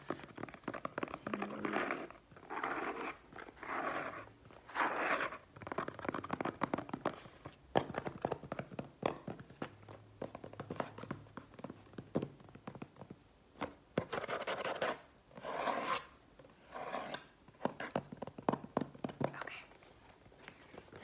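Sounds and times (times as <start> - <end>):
fingernails scratching cardboard: 0.8 - 7.3, 14.0 - 18.0.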